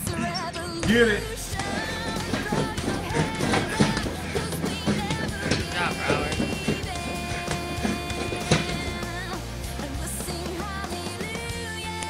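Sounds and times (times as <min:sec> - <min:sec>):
song with singing voice: 0:00.0 - 0:12.0.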